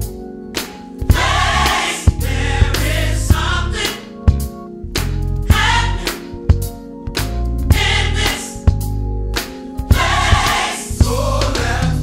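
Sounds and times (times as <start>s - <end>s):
gospel choir singing with band: 1.1s - 4.2s, 5.4s - 6.3s, 7.7s - 8.7s, 9.9s - 12.0s.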